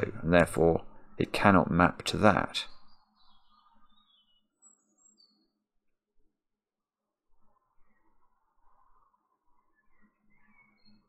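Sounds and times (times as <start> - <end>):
faint high chirps: 7.5 - 11.0.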